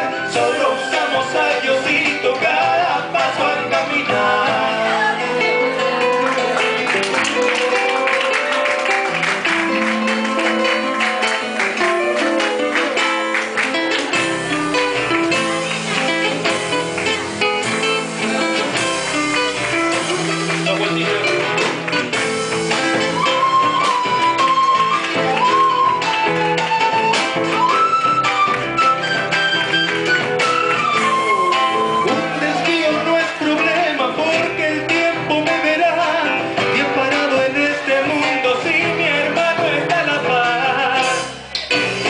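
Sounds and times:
acoustic guitars in a folk band: 0:00.0 - 0:42.0.

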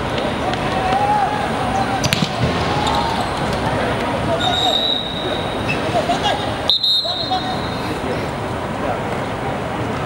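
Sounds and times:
people shouting: 0:00.6 - 0:07.8.

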